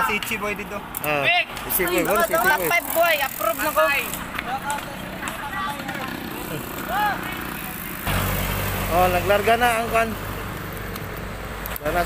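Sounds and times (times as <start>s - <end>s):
road noise: 0.0s - 12.0s
people talking: 8.9s - 10.2s.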